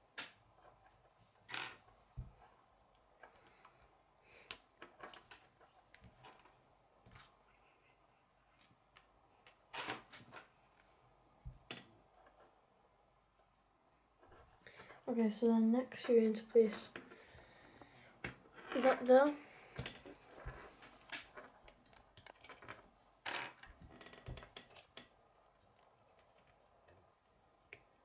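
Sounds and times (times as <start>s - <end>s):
plastic pieces clicking and rattling: 21.0s - 25.1s.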